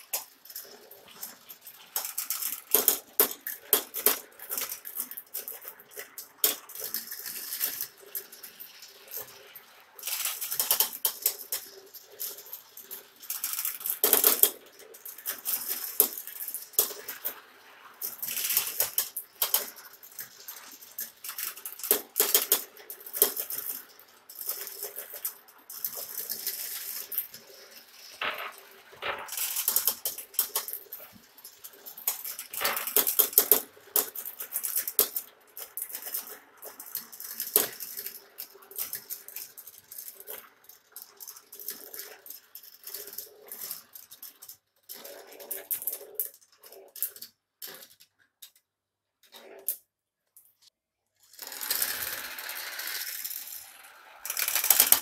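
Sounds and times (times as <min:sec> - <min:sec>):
marbles clattering down a marble run: 0:00.0 - 0:48.0, 0:51.2 - 0:55.0.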